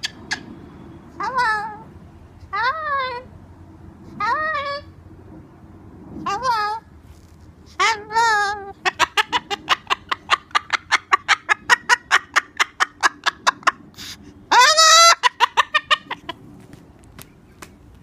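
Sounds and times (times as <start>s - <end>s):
cockatoo calling: 0.0s - 1.9s, 7.7s - 16.4s.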